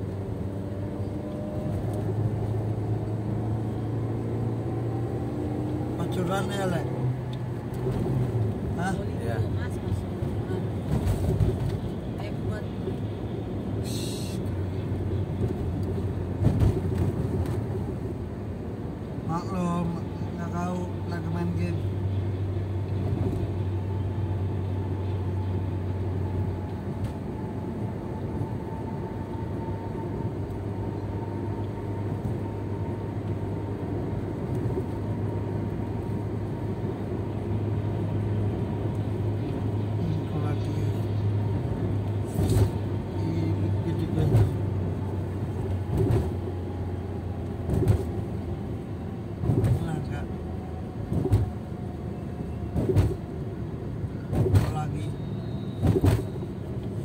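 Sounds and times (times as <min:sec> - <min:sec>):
car engine and tyre noise: 0:00.0 - 0:57.0.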